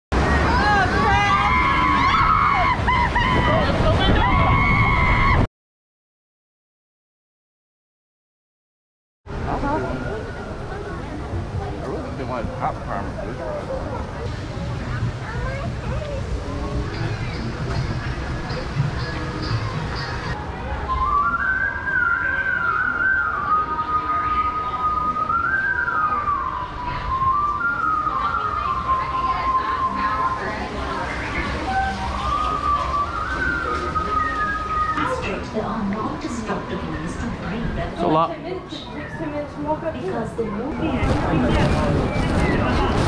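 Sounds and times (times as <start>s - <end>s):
background chatter: 9.3s - 43.0s
person whistling a tune: 20.9s - 30.2s, 31.7s - 35.0s.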